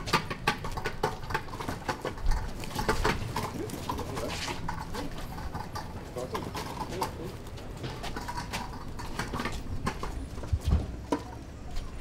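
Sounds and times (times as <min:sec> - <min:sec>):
hand truck rattling over paving: 0:00.0 - 0:12.0.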